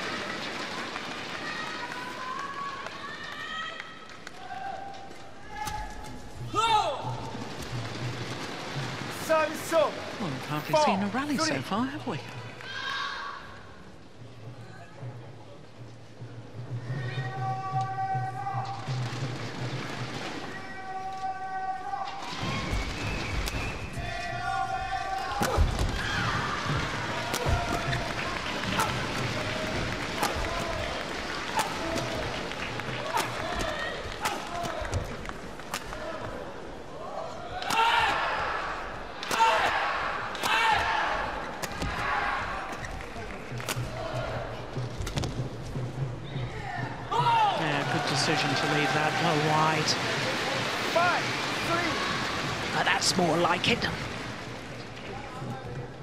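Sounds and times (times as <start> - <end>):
crowd calling and cheering: 0.0 - 56.0
racket striking shuttlecock: 41.6 - 42.0.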